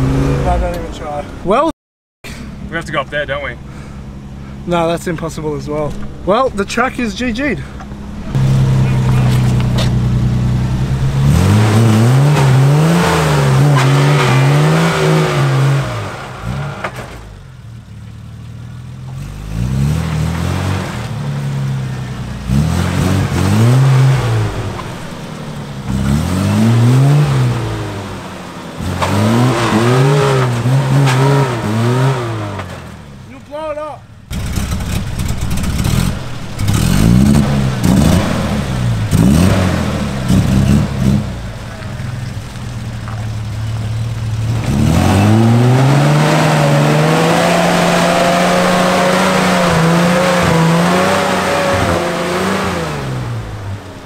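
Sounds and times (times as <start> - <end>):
engine revving hard: 0.0 - 0.8, 8.3 - 17.4, 19.3 - 21.8, 22.4 - 25.1, 25.8 - 33.0, 34.3 - 41.5, 44.4 - 53.9
tyres spinning in mud: 8.3 - 54.0.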